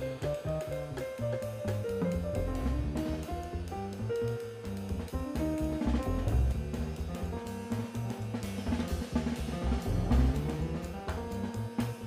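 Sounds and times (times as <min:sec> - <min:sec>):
bass line: 0:00.0 - 0:12.0
digital piano keyboard: 0:00.0 - 0:12.0
drum kit beat: 0:00.0 - 0:12.0.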